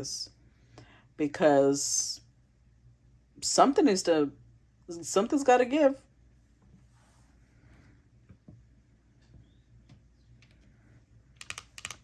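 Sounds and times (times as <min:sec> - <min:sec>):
fingernails clicking on cards: 0:11.4 - 0:12.0.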